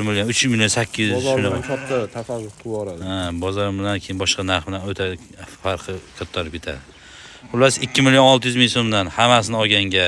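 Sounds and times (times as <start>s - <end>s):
sheep bleating: 1.1s - 2.4s, 7.5s - 8.4s.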